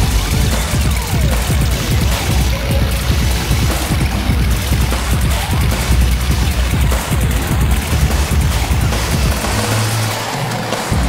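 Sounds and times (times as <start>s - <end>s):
live band playing electronic rock: 0.0s - 11.0s.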